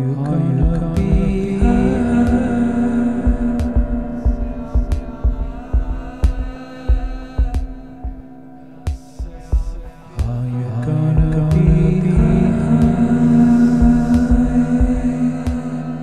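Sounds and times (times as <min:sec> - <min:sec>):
droning held chord: 0:00.0 - 0:16.0
low sustained chord: 0:00.0 - 0:16.0
sharp percussive hits: 0:00.6 - 0:08.2.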